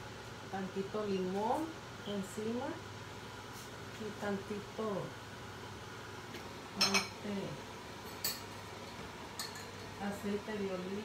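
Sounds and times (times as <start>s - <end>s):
dishes and utensils clinking: 6.8s - 7.2s, 8.0s - 8.6s, 9.4s - 10.0s.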